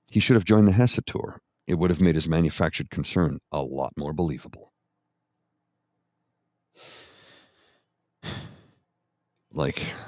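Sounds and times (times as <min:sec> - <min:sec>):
person sighing: 0:08.2 - 0:08.8, 0:09.7 - 0:10.0.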